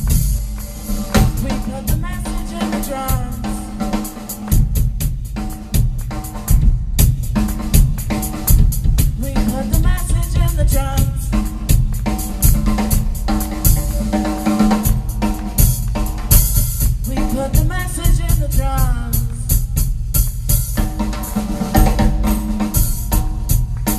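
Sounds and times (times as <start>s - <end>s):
cymbals washing: 0.0s - 10.4s, 11.2s - 17.5s
fast drum solo: 0.0s - 23.9s.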